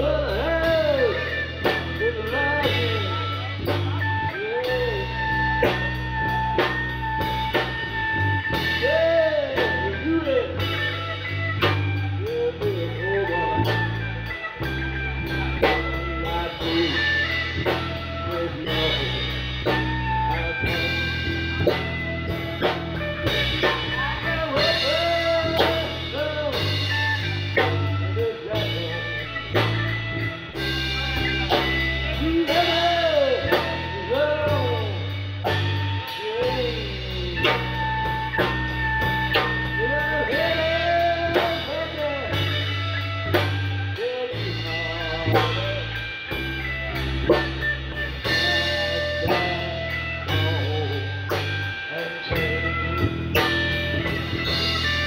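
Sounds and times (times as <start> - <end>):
drum kit: 0.0 - 55.0
electric bass low notes: 0.0 - 55.0
electric guitar bending notes: 0.0 - 55.0.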